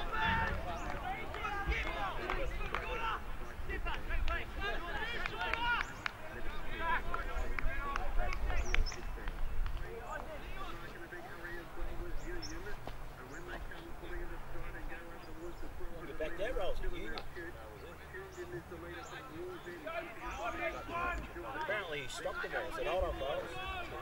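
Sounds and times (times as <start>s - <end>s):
indistinct voices shouting: 0.0s - 8.5s.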